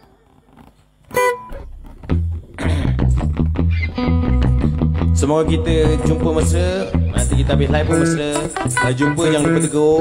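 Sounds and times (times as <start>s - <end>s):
guitars strumming chords: 1.0s - 10.0s
low bass notes: 1.3s - 10.0s.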